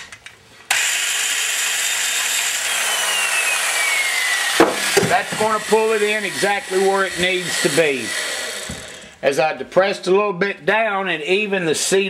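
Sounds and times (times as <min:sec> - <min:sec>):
valve seat grinder grinding: 0:00.7 - 0:09.2.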